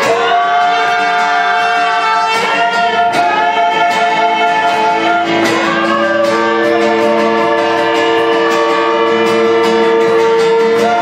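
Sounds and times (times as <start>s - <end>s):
women singing into microphones: 0.0s - 9.9s
acoustic guitar: 0.0s - 11.0s.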